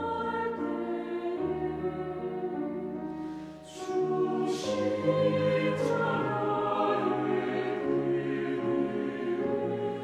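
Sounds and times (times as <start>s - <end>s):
mixed choir singing: 0.0s - 3.0s, 3.6s - 10.0s.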